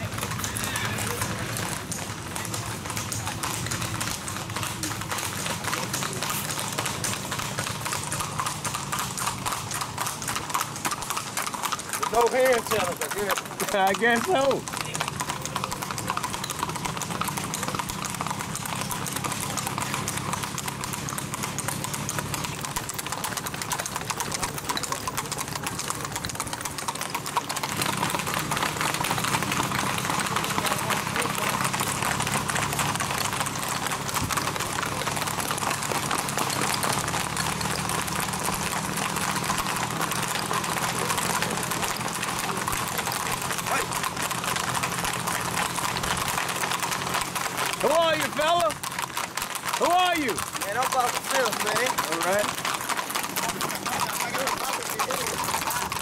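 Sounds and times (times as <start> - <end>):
horse hooves on paved road: 0.0 - 56.0.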